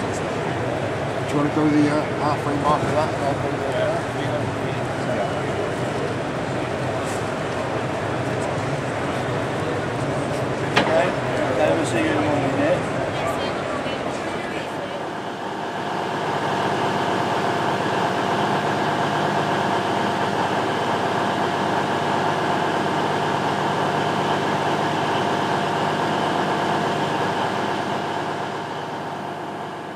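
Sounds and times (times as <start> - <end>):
mechanical hum with held tones: 0.0 - 29.9.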